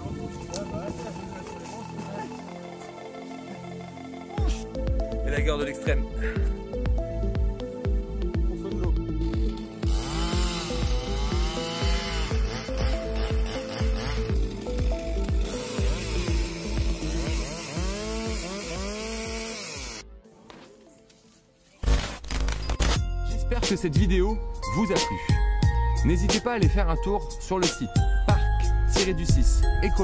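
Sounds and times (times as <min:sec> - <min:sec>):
marimba music with steady beat: 0:00.0 - 0:19.5, 0:23.1 - 0:30.0
chainsaw revving through log: 0:09.8 - 0:20.0.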